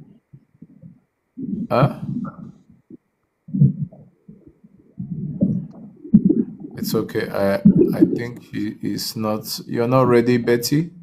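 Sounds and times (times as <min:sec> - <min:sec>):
muffled voice over video call: 0:01.7 - 0:02.4, 0:06.8 - 0:11.0.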